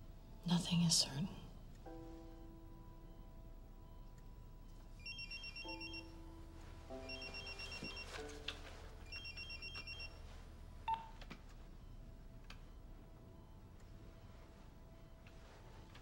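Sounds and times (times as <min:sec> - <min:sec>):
soft sustained music notes: 0:00.0 - 0:10.8.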